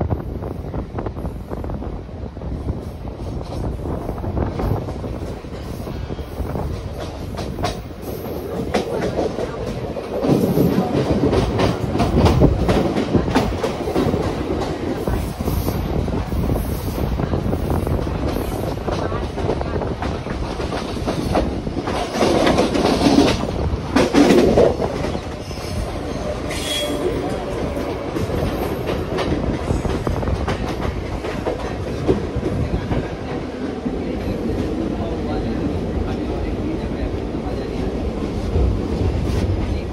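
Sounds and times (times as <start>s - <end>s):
train rumble: 0.0s - 39.9s.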